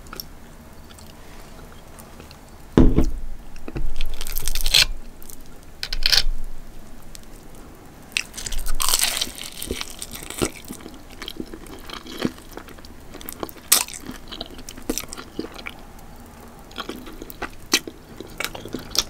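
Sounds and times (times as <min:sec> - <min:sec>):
crunchy chewing of fried chicken: 0:00.0 - 0:02.6, 0:04.0 - 0:05.5, 0:08.1 - 0:19.0.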